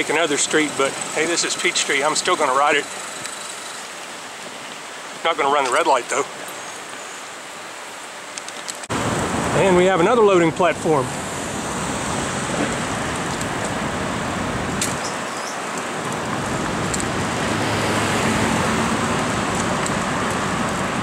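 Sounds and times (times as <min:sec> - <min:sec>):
city street traffic: 0:00.0 - 0:21.0
wind rushing over microphone: 0:08.9 - 0:21.0.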